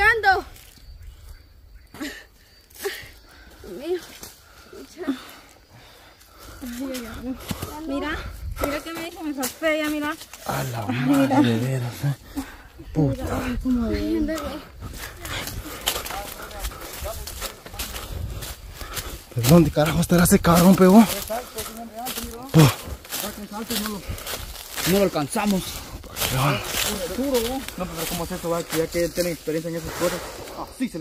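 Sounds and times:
footsteps crunching on dry leaves: 14.8 - 29.9.

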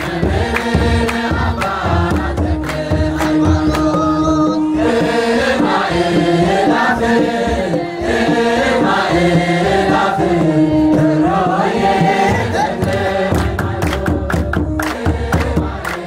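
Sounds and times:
mixed choir singing a hymn: 0.0 - 16.0.

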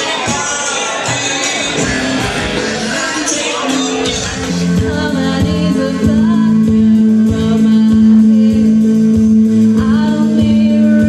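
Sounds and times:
drums: 0.0 - 11.0
live rock band playing: 0.0 - 11.0
woman singing into a microphone: 2.6 - 11.0.

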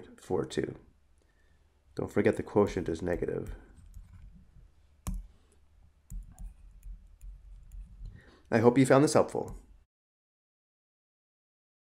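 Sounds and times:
faint low hum: 0.0 - 9.9
mouse click: 5.0 - 5.3.

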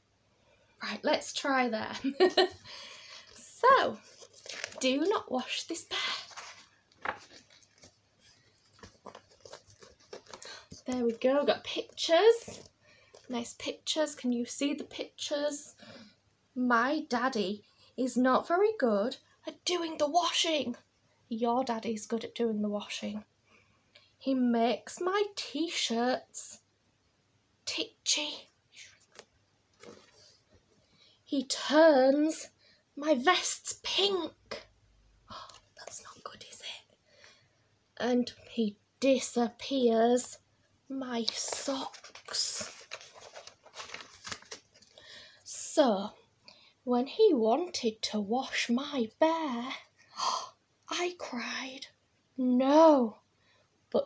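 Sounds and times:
pages rustling: 2.7 - 13.3, 28.9 - 30.7, 41.2 - 45.1
person whispering: 35.3 - 36.9.

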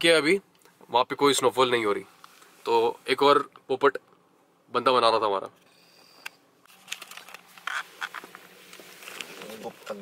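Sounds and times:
faint steady hum: 0.0 - 10.0
camera handling clicks and rubbing: 6.2 - 9.3.

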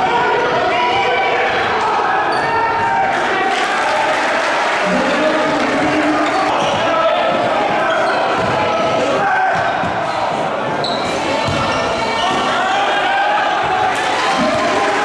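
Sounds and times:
crowd voices and shouting: 0.0 - 15.0.

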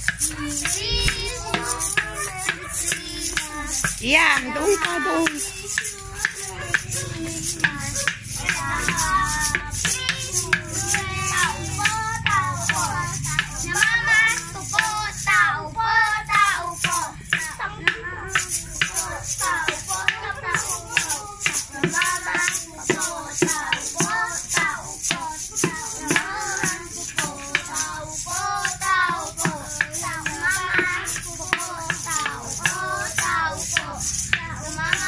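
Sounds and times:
children singing a carol: 0.0 - 35.0
hand percussion strikes: 0.0 - 35.0.

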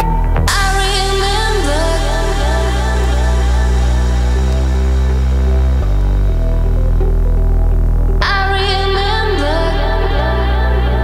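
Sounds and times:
bright wavering synth melody: 0.0 - 11.0
deep bass drone: 0.0 - 11.0.

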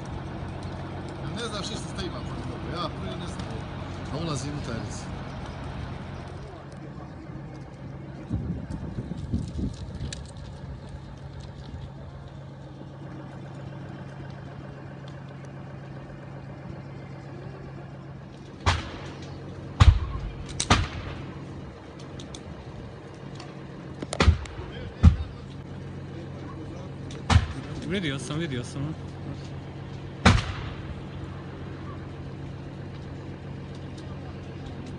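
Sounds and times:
fire crackling: 0.0 - 34.9
steady low hum: 0.0 - 34.9
loud bangs of items bursting: 18.6 - 21.3, 24.2 - 25.4, 27.2 - 27.8, 30.2 - 31.0.

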